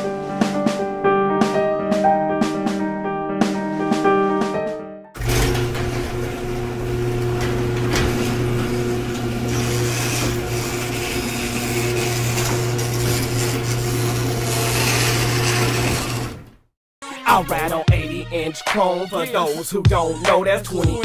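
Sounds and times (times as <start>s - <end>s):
low mechanical hum: 5.2s - 16.3s.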